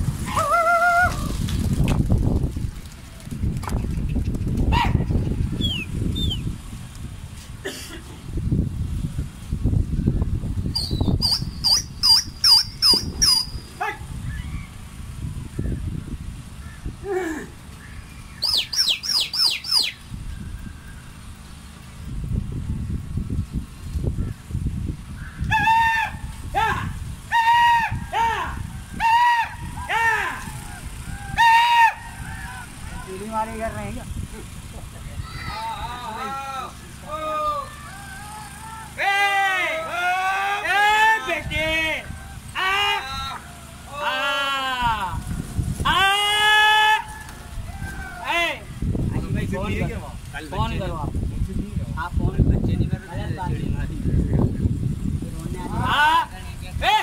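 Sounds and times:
wind rumble on microphone: 0.0s - 37.7s, 41.3s - 43.4s, 44.7s - 57.0s
pigeon wingbeats: 0.3s - 4.9s
repeated pitched bird calls: 3.8s - 6.6s, 10.0s - 21.8s, 23.7s - 26.4s, 27.2s - 33.4s
rapid high chirps: 10.7s - 13.8s, 18.0s - 20.4s.

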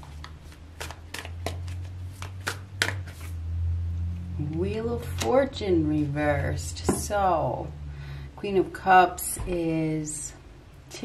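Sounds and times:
cards flicking and sliding: 0.0s - 3.4s
low steady hum: 0.0s - 11.0s.

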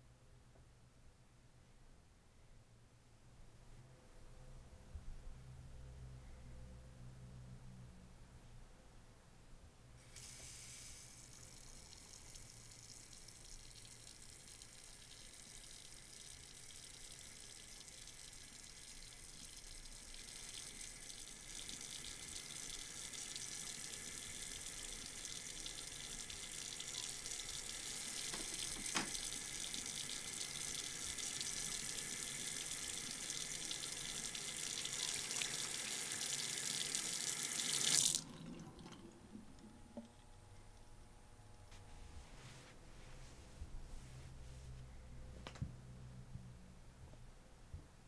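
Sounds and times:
sink tap running: 20.2s - 39.0s.

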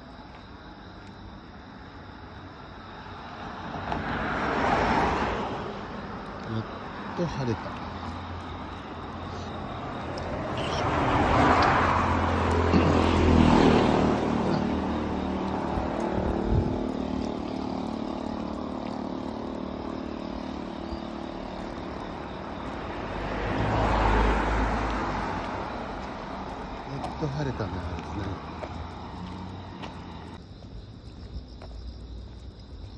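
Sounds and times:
steady traffic hum: 0.0s - 32.9s
vehicles passing: 1.6s - 32.9s.

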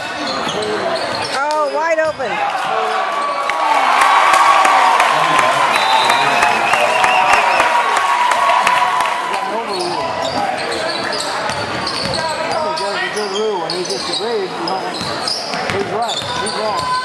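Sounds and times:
chatter of spectators: 0.0s - 17.0s.

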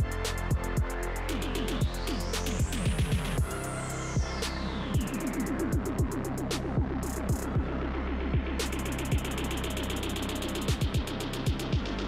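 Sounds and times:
hi-hat ticks: 0.0s - 3.6s, 5.0s - 7.6s, 8.6s - 12.0s
deep bass hits: 0.0s - 12.0s
electronic music with beat: 0.0s - 12.0s.

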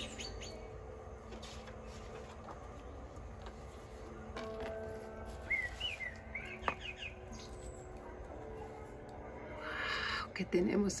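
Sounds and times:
bird whistled chirps: 0.0s - 0.6s, 5.4s - 7.5s.

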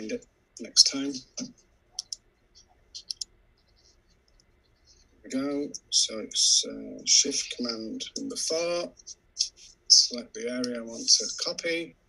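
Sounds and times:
computer clicks: 2.0s - 2.2s, 3.0s - 3.3s.

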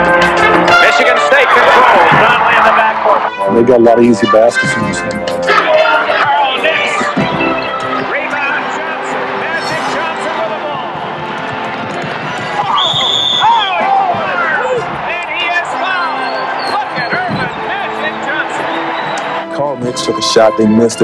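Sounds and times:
arena noise: 0.0s - 19.8s.

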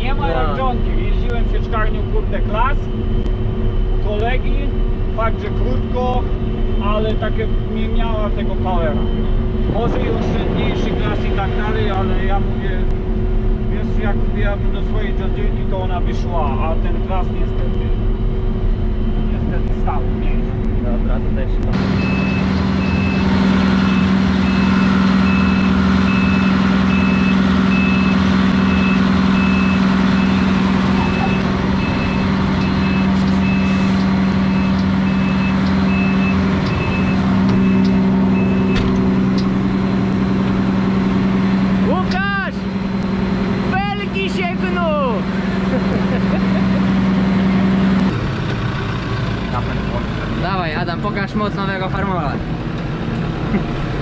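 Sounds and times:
voices in tractor cab: 0.0s - 3.0s, 4.0s - 12.9s, 13.7s - 18.0s, 19.2s - 21.9s, 30.7s - 34.7s, 41.8s - 42.7s, 43.6s - 48.1s, 49.4s - 52.5s
forage harvester running under load: 21.6s - 54.0s
high electronic beeps: 21.9s - 39.3s.

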